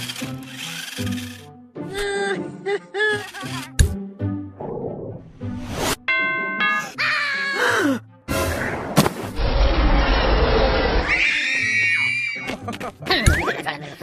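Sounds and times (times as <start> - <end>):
background music: 0.0 - 9.4, 11.1 - 14.0
bell-like ding: 6.1 - 7.0.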